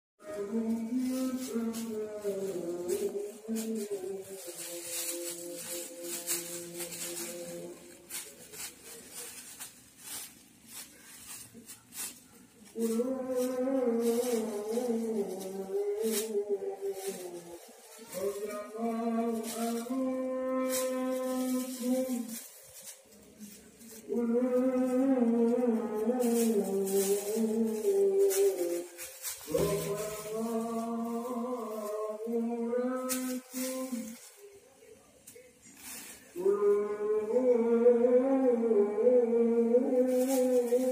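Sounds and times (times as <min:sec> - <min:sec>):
person chanting melodically: 0:00.2 - 0:35.0, 0:35.7 - 0:40.9
plastic bag crinkling: 0:00.2 - 0:37.4, 0:39.6 - 0:40.9.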